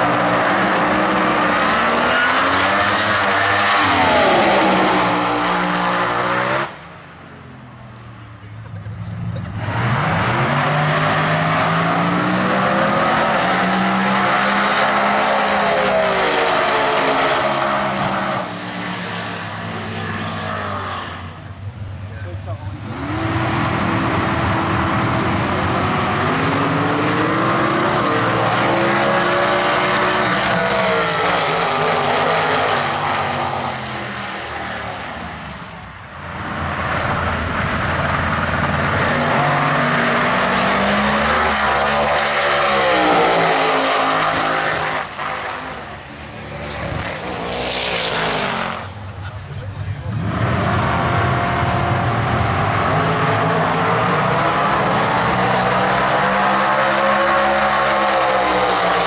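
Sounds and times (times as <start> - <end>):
drag racing cars at full throttle: 0.0 - 59.0.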